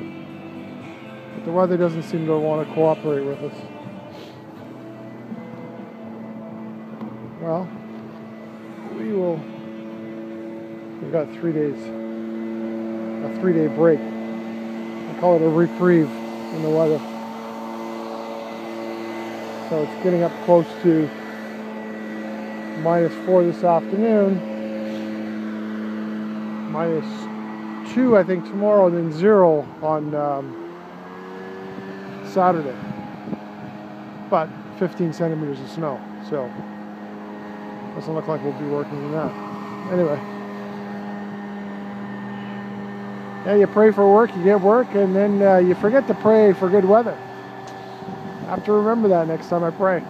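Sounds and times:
machine humming: 0:00.0 - 0:50.0.

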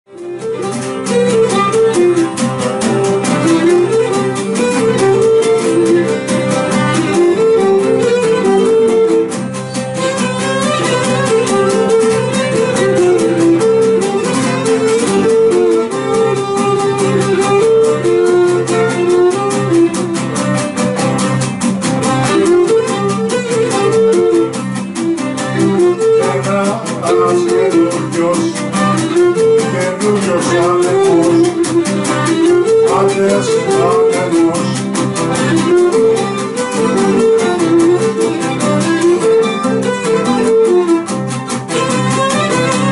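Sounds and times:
bowed lyra melody: 0:00.1 - 0:42.9
lute strumming chords: 0:00.1 - 0:42.9.

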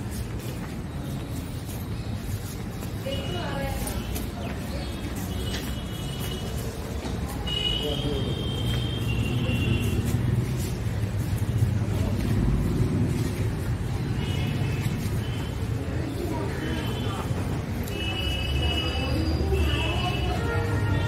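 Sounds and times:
indistinct background voices: 0:00.0 - 0:21.0.

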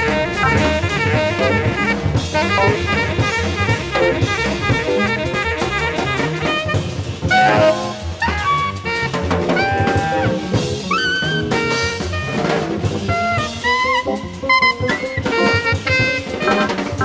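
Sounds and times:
busy drum kit: 0:00.0 - 0:17.0
horns playing jazz melody: 0:00.0 - 0:17.0.

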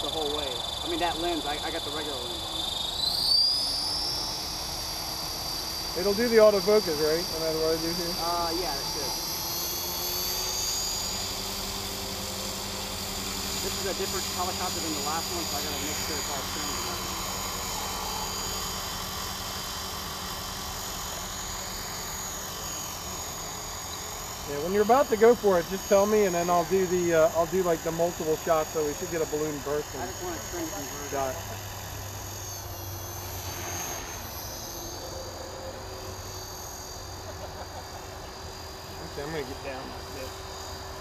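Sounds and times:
rc helicopter motor whine: 0:00.0 - 0:41.0.

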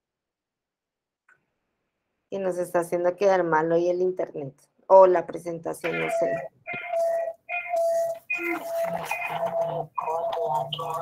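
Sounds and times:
repeating electronic tune: 0:05.8 - 0:11.0
voice-like sound: 0:08.3 - 0:11.0.

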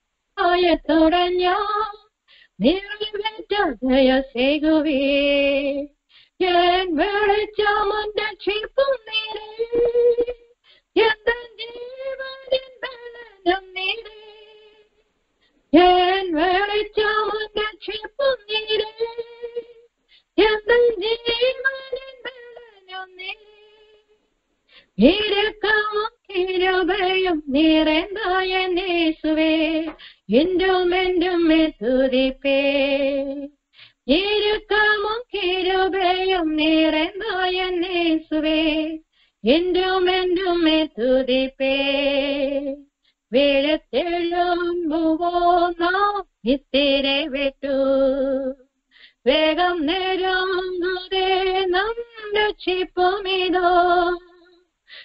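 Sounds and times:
woman singing gospel song: 0:00.4 - 0:02.0, 0:02.6 - 0:10.4, 0:11.0 - 0:14.8, 0:15.8 - 0:19.7, 0:20.4 - 0:23.8, 0:25.0 - 0:48.6, 0:49.2 - 0:55.0.

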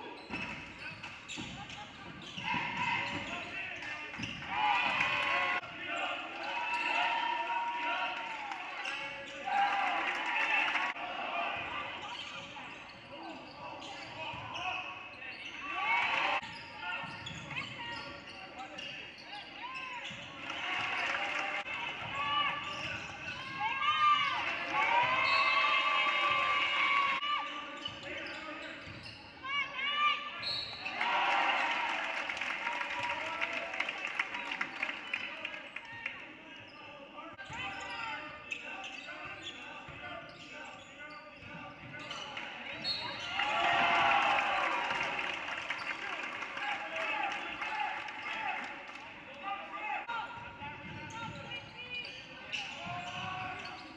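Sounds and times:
shoes squeaking on floor: 0:00.0 - 0:04.5, 0:11.9 - 0:15.8, 0:16.4 - 0:20.4, 0:22.1 - 0:24.4, 0:25.0 - 0:25.8, 0:27.2 - 0:31.0, 0:36.7 - 0:43.9, 0:50.8 - 0:53.9.

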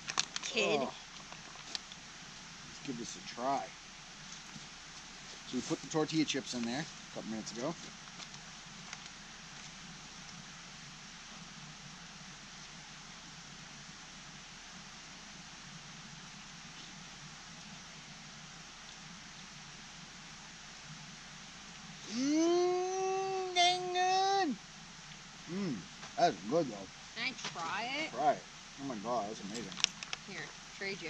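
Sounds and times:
faint background hiss: 0:00.0 - 0:31.0
person humming long note: 0:22.0 - 0:23.9, 0:25.5 - 0:25.8.

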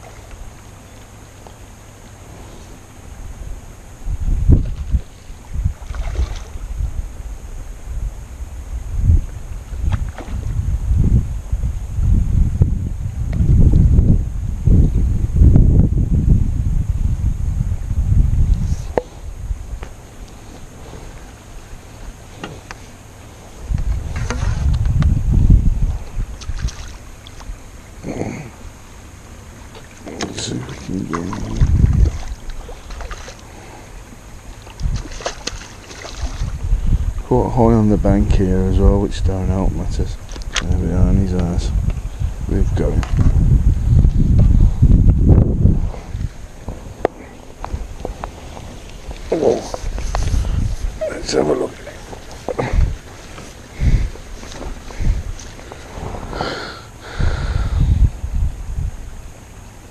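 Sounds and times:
wind buffeting microphone: 0:02.1 - 0:59.9.

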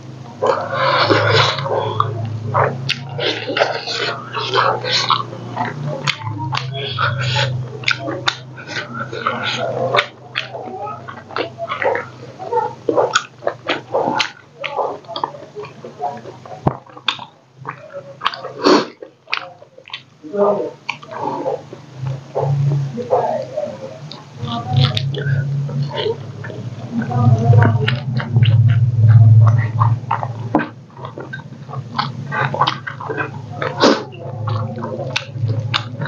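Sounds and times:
low steady hum: 0:00.0 - 0:36.0
chewing and lip-smacking: 0:00.2 - 0:20.2, 0:20.8 - 0:36.0.

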